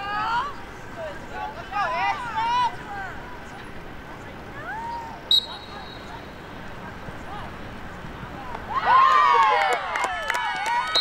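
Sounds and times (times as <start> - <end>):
voices shouting and calling out: 0.0 - 11.0.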